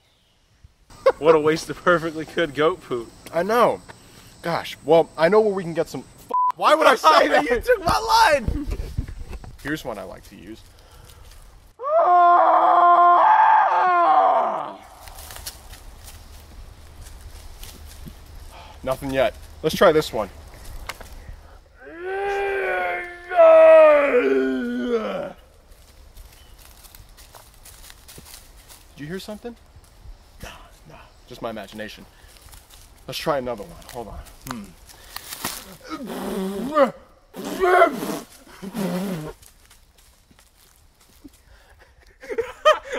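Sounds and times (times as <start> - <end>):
man making animal call: 35.8 - 39.4.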